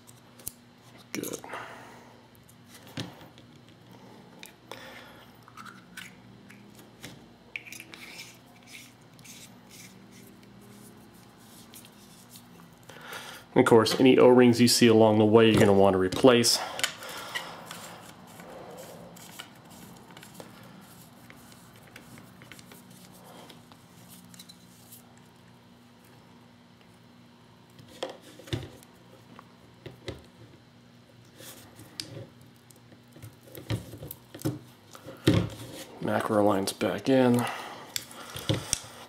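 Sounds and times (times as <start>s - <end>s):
faint steady hum: 0.0s - 39.0s.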